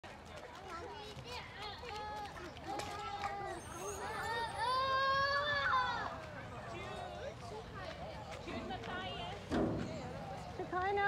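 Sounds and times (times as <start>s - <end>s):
children calling out and chattering: 0.3s - 11.0s.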